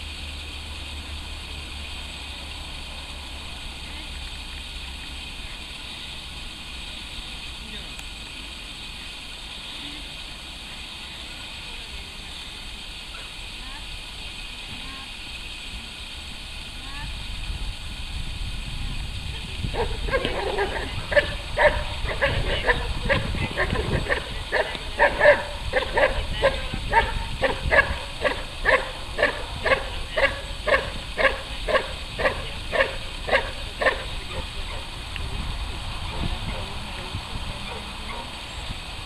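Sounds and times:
dog barking fast: 19.8s - 34.1s.

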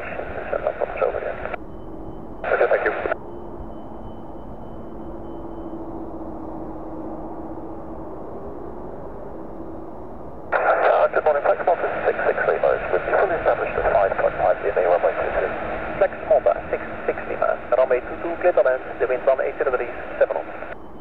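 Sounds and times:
steady hum with low tone: 0.0s - 21.0s
voice over tinny radio: 2.5s - 3.2s, 10.6s - 20.6s.

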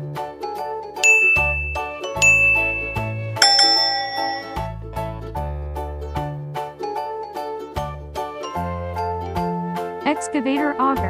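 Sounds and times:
background music: 0.0s - 11.0s
bright ringing ding chimes: 1.0s - 4.6s.

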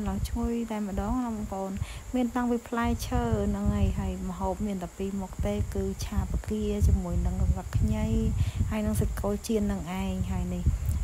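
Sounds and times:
person talking: 0.0s - 10.7s
faint insect buzz: 0.0s - 11.0s.

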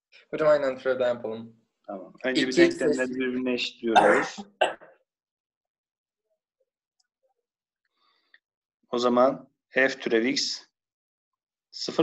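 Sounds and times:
person clearing throat: 3.9s - 4.9s.

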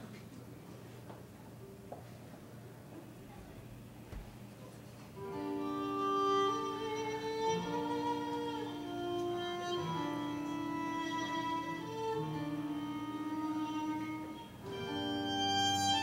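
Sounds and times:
cello long held notes: 5.2s - 16.0s
violin long held notes: 5.2s - 16.0s.

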